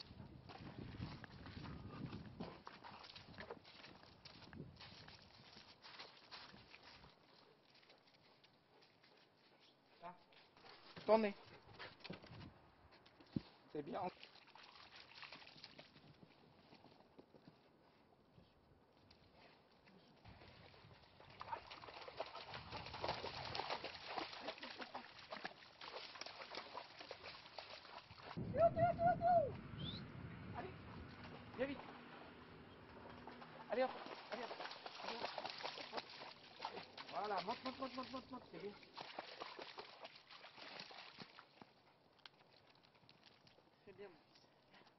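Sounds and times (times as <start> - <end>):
faint rising whistle: 28.4 - 30.3.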